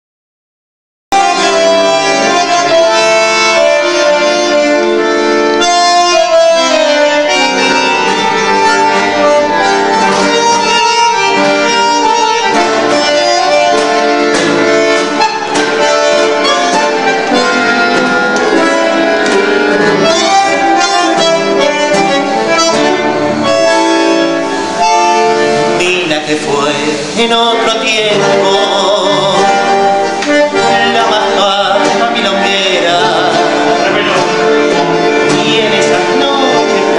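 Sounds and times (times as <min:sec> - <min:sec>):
bandoneons playing tango chords: 0:01.1 - 0:36.9
guitar: 0:01.1 - 0:36.9.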